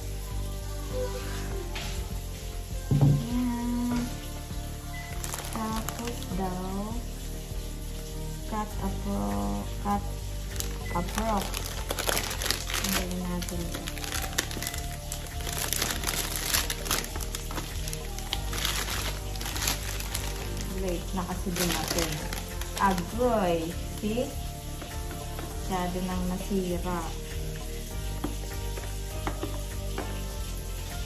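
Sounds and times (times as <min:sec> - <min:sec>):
cellophane wrap crinkling: 0:04.9 - 0:07.0, 0:09.8 - 0:28.4.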